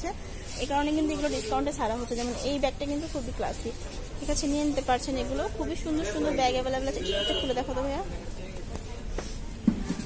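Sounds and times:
woman talking: 0:00.0 - 0:08.1.

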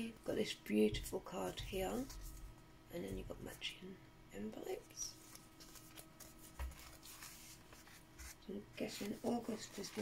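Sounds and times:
paper cards rustling: 0:05.1 - 0:10.0.

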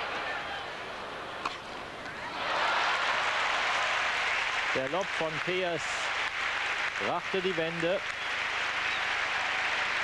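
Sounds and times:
arena crowd noise: 0:00.0 - 0:10.0
crowd applause: 0:02.3 - 0:10.0.

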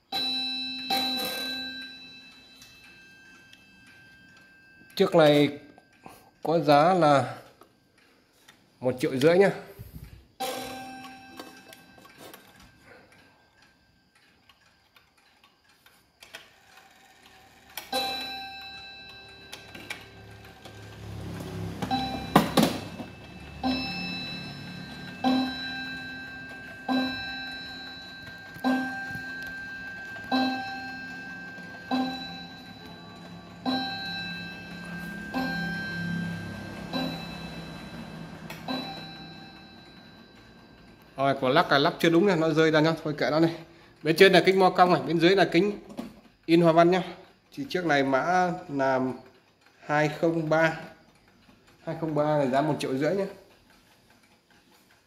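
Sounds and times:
clock gong striking: 0:18.0 - 0:40.3.

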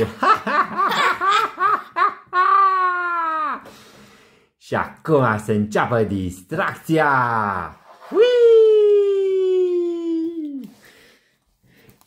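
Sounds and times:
person laughing in character voice: 0:00.0 - 0:03.6.

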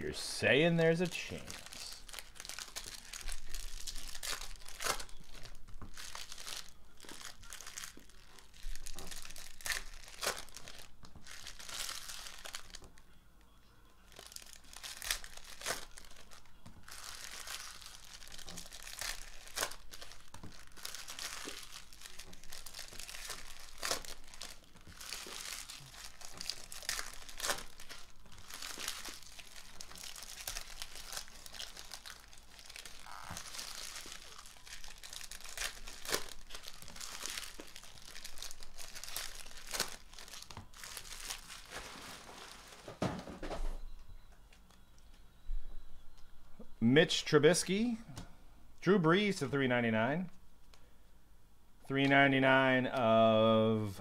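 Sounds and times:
foil wrappers crinkling and tearing: 0:00.4 - 0:13.0, 0:14.0 - 0:43.0.

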